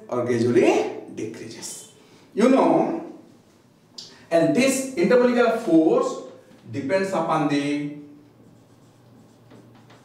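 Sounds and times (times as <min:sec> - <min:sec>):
marker writing on whiteboard: 0:07.9 - 0:10.0.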